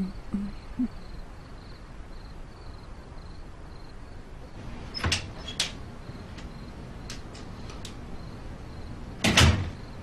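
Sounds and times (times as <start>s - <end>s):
door closing with thud: 4.6s - 5.8s, 9.2s - 9.9s.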